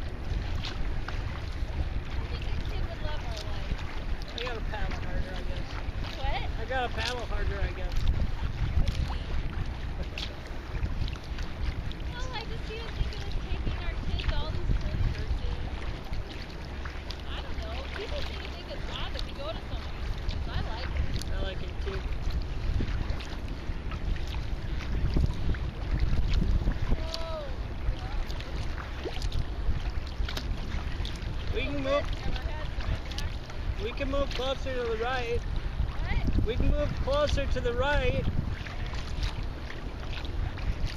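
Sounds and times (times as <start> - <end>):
water splashing against kayak: 0.0 - 40.9
wind buffeting microphone: 0.0 - 40.9.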